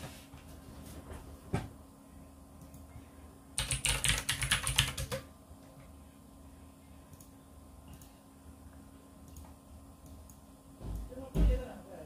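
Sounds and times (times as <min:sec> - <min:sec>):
typing on computer keyboard: 0:03.6 - 0:05.3.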